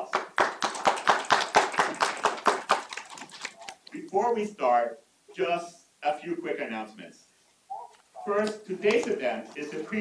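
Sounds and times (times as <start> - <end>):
small audience applauding: 0.0 - 3.9.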